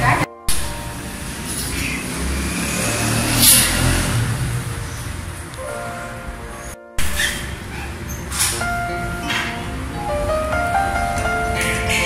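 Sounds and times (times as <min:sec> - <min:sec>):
traffic engine rumble: 0:00.0 - 0:12.0
vehicle passing: 0:00.8 - 0:06.8.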